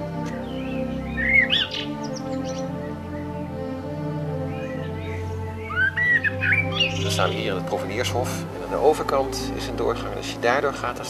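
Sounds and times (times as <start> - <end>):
music of long held notes: 0.0 - 11.0
songbird chirping: 0.0 - 11.0.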